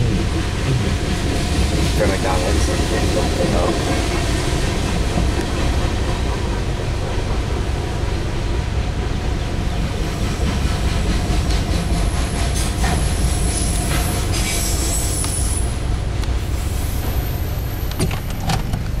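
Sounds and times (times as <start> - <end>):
steel wheels rumbling on rail: 0.0 - 19.0
high wheel squeal: 12.0 - 15.8.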